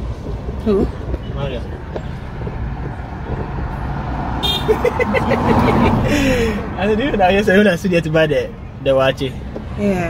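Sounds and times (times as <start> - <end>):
traffic rumble inside car: 0.0 - 10.0.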